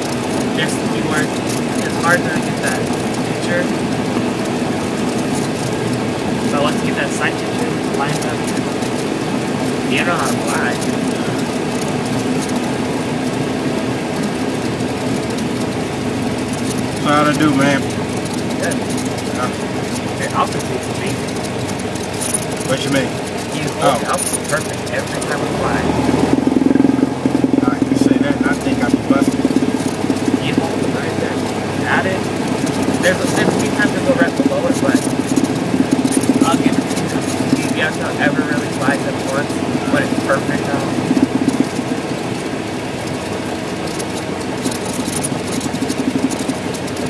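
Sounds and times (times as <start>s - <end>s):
airplane engine idling: 0.0s - 47.0s.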